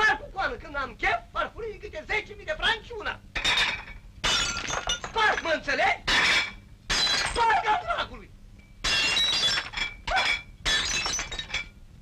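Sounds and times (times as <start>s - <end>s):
plates smashing on floor: 3.4s - 5.5s, 6.1s - 7.4s, 8.8s - 11.8s
shards ringing: 3.4s - 7.5s, 8.6s - 11.8s.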